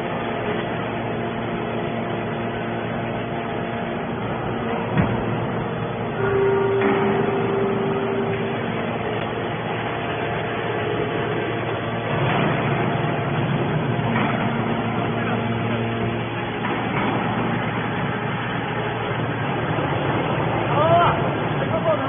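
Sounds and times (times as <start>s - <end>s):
held whine: 0.0s - 20.7s
metal baler running: 0.0s - 22.0s.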